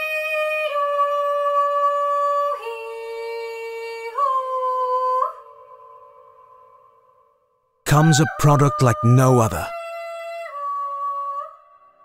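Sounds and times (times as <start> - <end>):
high voice singing wordlessly: 7.9 - 9.7.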